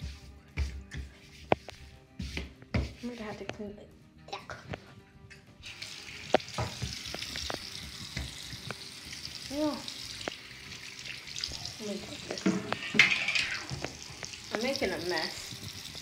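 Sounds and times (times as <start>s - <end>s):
tap water splashing into basin: 5.6s - 16.0s
knocks and clicks at sink: 6.4s - 8.8s, 12.2s - 15.0s.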